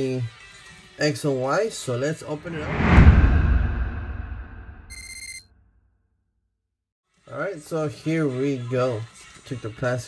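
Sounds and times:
low rumble: 2.4 - 4.9.

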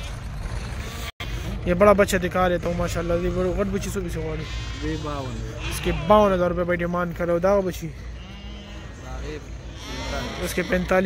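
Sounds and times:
sheep bleating faintly: 2.8 - 6.6, 8.0 - 11.0.

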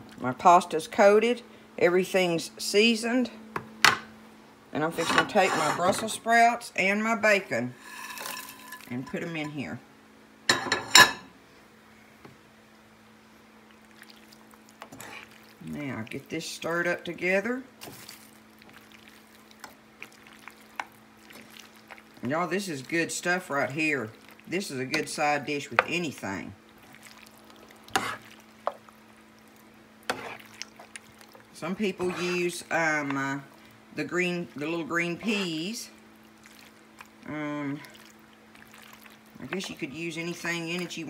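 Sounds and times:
steady low hum: 0.0 - 41.0
food clattering into a skillet: 7.8 - 9.4
spoon stirring thick pasta: 7.8 - 9.6, 13.7 - 41.0.

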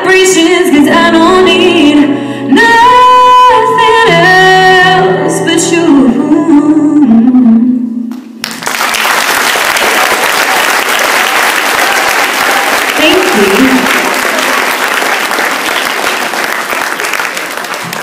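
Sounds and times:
music: 0.0 - 8.1
audience applauding: 8.1 - 18.0.

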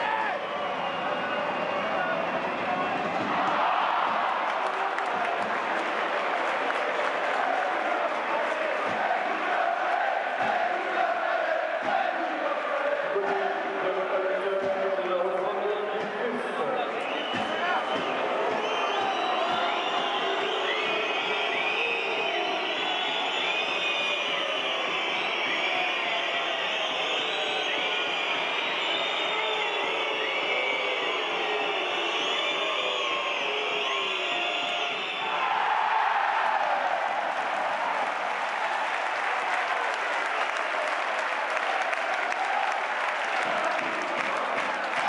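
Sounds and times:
crowd shouting: 0.0 - 14.7, 16.7 - 45.0
crowd cheering and applauding: 0.0 - 45.0.

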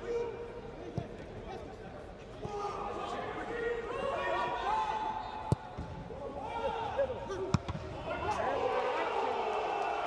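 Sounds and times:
players shouting: 6.2 - 10.0.

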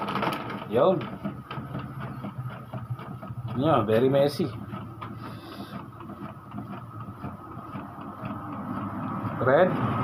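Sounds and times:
printer motor hum: 0.0 - 10.0.

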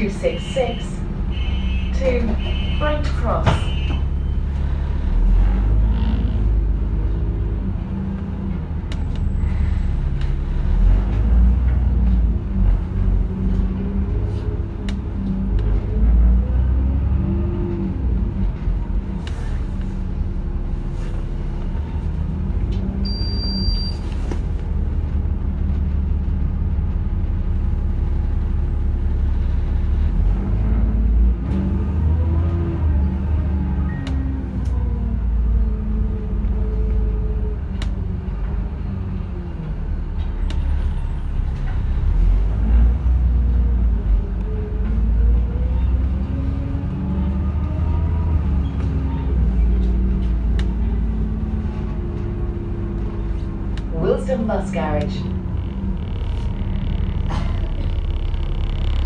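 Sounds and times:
bus engine rumble and whine: 0.0 - 59.0.

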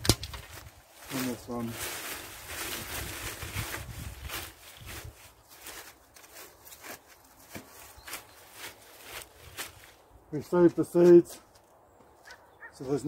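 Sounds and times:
dry plants rustling and crackling: 0.0 - 13.0.

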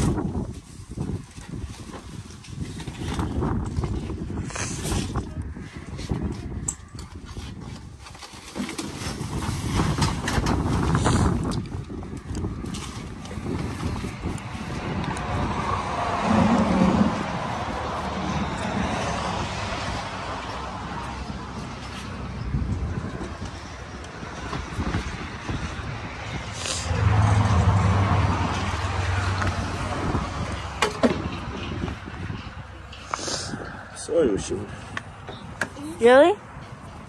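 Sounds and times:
wind buffeting microphone: 0.0 - 37.0
vehicle engine humming: 10.6 - 37.0.

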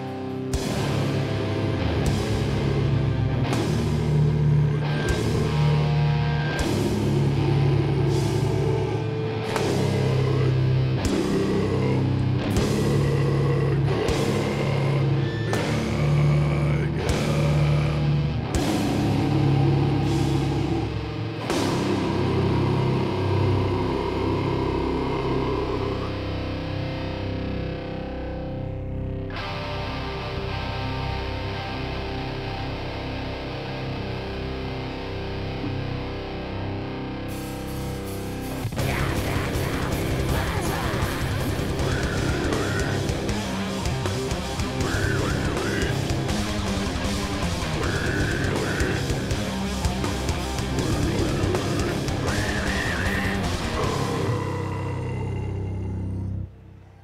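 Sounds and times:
metalcore band playing live: 0.0 - 56.4.

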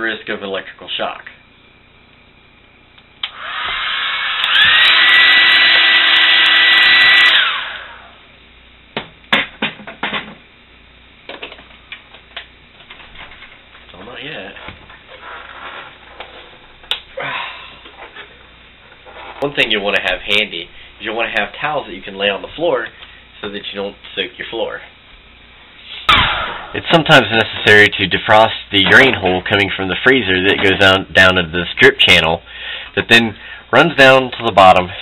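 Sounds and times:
hair dryer blowing: 3.2 - 8.1.

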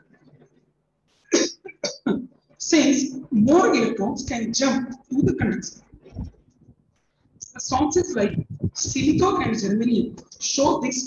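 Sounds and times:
person coughing: 1.2 - 2.1
throat sounds: 7.4 - 9.6.

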